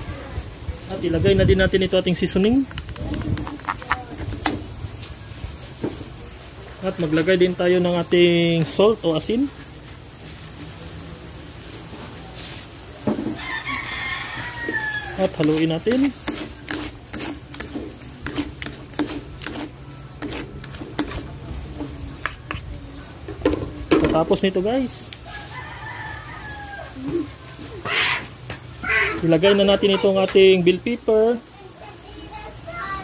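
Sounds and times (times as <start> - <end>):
rooster crowing: 13.3 - 15.5, 25.2 - 28.2.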